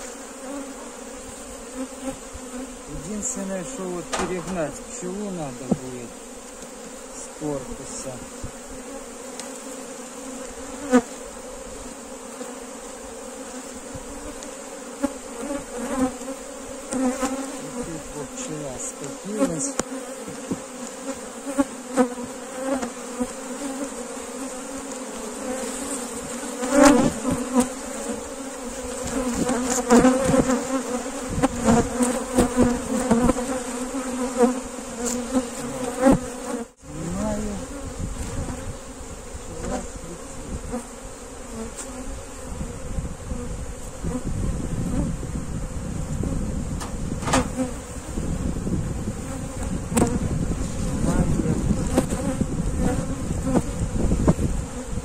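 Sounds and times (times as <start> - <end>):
bees buzzing: 0.0 - 55.0
knocks and clicks: 46.8 - 47.6.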